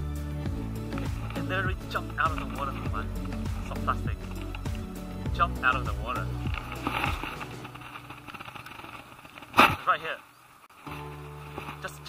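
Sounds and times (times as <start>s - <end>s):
background music: 0.0s - 8.6s, 10.7s - 12.0s
steady outdoor hiss: 0.0s - 12.0s
clothing rustling against camera: 0.8s - 4.9s, 6.2s - 12.0s.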